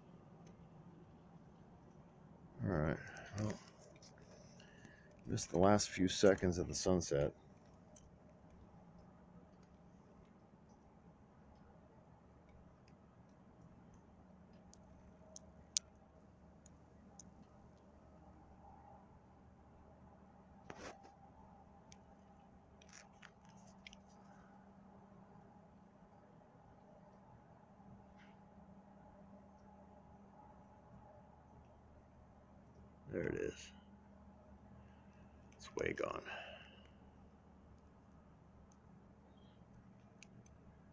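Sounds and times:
faint low hum: 0.0 - 40.9.

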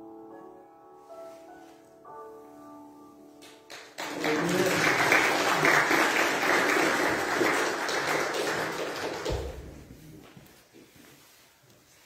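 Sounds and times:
piano chord: 0.0 - 5.6
crowd applauding: 3.7 - 9.8.

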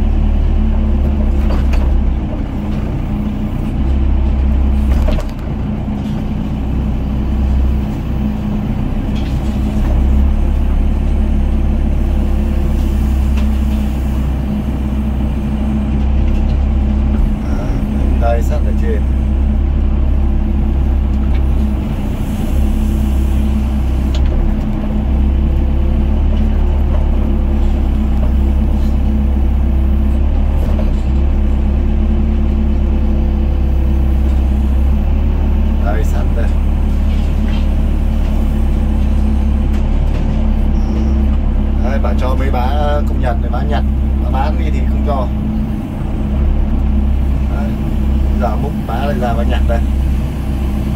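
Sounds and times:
diesel engine under load: 0.0 - 50.9
hydraulics working: 0.0 - 50.9.

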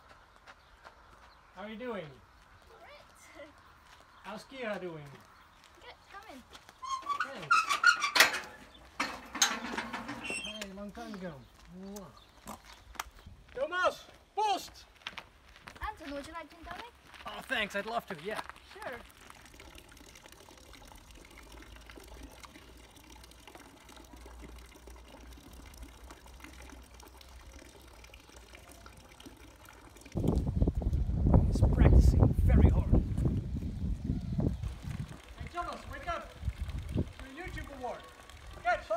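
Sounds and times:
metal gate clanking and rattling: 6.8 - 10.8
thin stream of water splashing: 18.2 - 31.1, 34.5 - 38.9.

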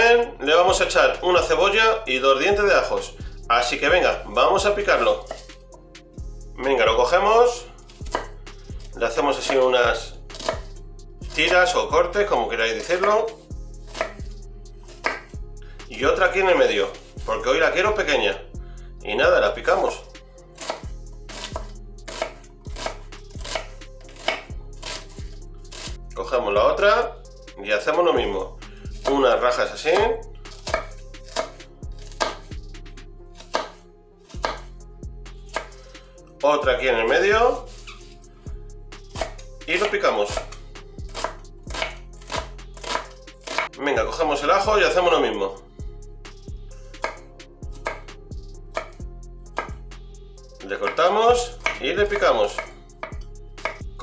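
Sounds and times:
knife chopping on wooden board: 5.0 - 5.6, 7.9 - 9.7, 10.3 - 10.8, 12.8 - 15.3, 20.6 - 26.0, 29.9 - 32.6, 33.4 - 34.7, 35.5 - 35.8, 39.1 - 43.7, 47.0 - 49.0, 49.6 - 49.8, 50.8 - 53.9.

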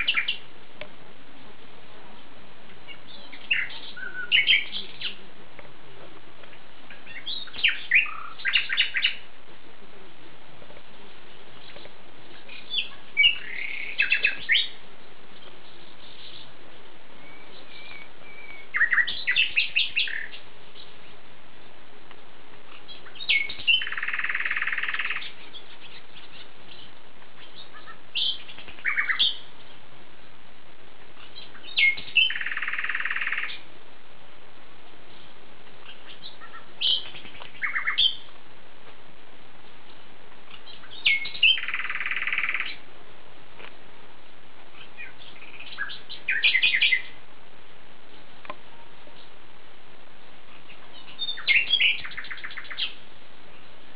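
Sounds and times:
bird chirping: 0.0 - 0.5, 2.8 - 5.3, 6.5 - 9.4, 11.2 - 21.2, 22.6 - 30.4, 31.1 - 33.7, 35.1 - 38.4, 39.7 - 42.9, 44.6 - 47.3, 48.0 - 49.4, 50.4 - 53.9
buzzy bird trill: 0.0 - 0.5, 2.9 - 5.2, 6.9 - 9.3, 11.5 - 21.1, 22.7 - 29.8, 31.2 - 33.7, 35.1 - 38.3, 39.8 - 42.8, 44.7 - 47.2, 50.5 - 53.7
faint hiss: 0.0 - 53.9.

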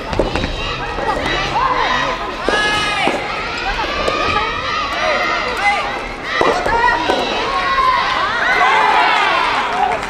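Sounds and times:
racket hitting ball: 0.0 - 4.5, 6.0 - 8.1
voices shouting and calling: 0.0 - 10.0.

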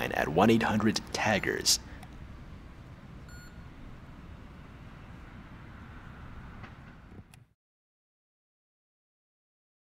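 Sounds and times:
high-pitched beep: 3.3 - 3.6.

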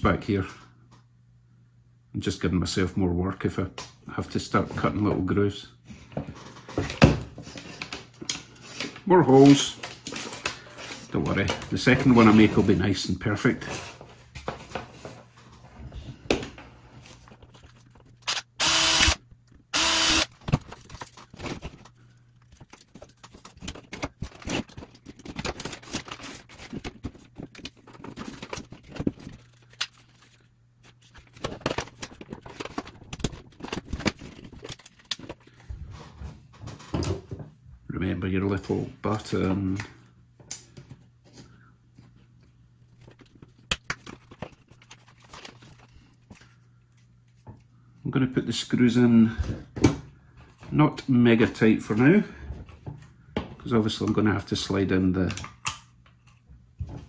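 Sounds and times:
power drill drilling plastic: 18.3 - 20.3
plastic parts clicking and rattling: 20.3 - 30.4, 31.3 - 35.5.

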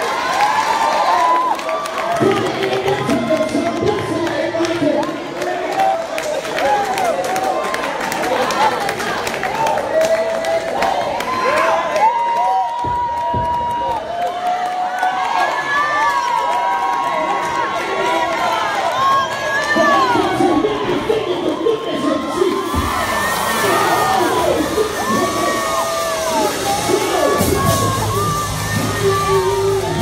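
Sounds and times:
audience cheering and screaming: 0.0 - 30.0
music: 23.7 - 30.0.

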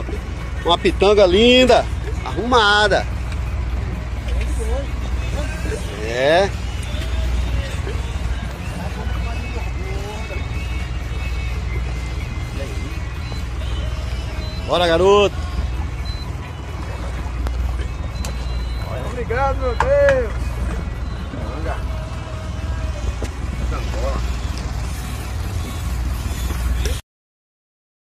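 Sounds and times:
faint voices: 0.0 - 25.5
boat engine running: 0.0 - 27.0
water splashing along hull: 0.0 - 27.0.

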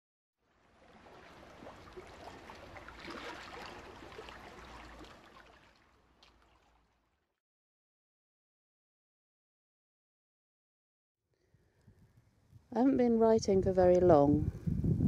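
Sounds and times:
faint running water: 0.5 - 7.3.

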